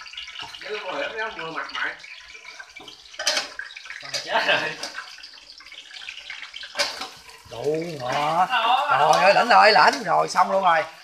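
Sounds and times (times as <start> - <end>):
fish deep-frying in sizzling oil: 0.0 - 11.0.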